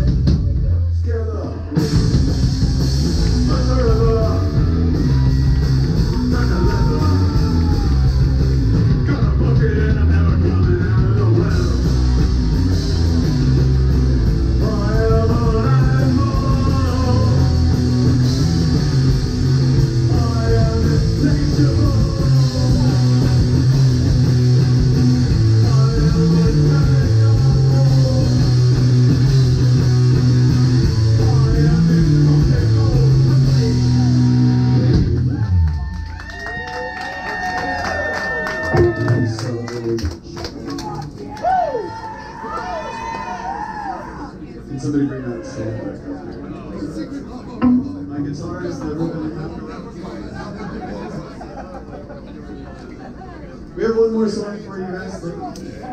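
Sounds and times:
live rock band playing: 0.0s - 0.8s, 1.7s - 36.2s, 47.6s - 48.5s.

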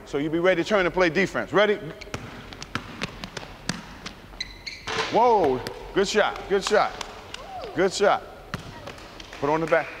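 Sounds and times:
basketball bouncing on hardwood: 2.1s - 4.2s, 8.5s - 9.0s.

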